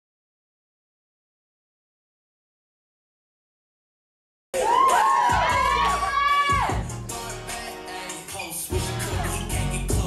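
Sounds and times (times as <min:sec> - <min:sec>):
audience cheering and yelling: 0:04.6 - 0:06.9.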